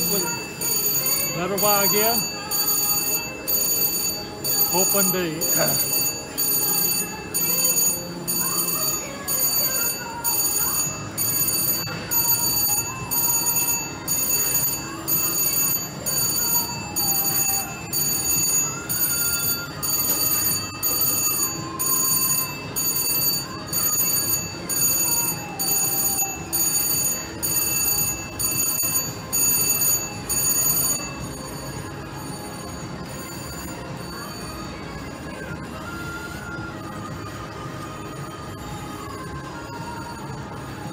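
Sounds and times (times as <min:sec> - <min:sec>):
slot machine electronic bell: 0:00.0 - 0:40.9.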